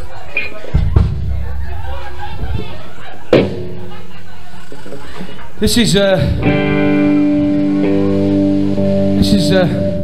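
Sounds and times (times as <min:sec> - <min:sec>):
held pitched note from amplifiers: 0:06.4 - 0:10.0.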